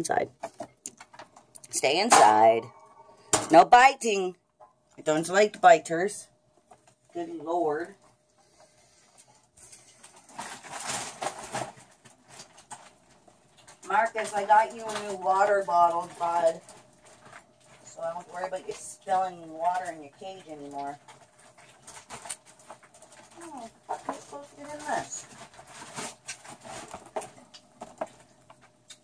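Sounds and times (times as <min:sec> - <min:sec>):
woman speaking: 0:00.0 - 0:00.3, 0:01.6 - 0:02.7, 0:03.4 - 0:04.4, 0:05.0 - 0:06.3, 0:07.2 - 0:08.0, 0:13.8 - 0:16.6, 0:17.8 - 0:21.0, 0:23.4 - 0:25.3
rats climbing cage bars: 0:06.7 - 0:29.0.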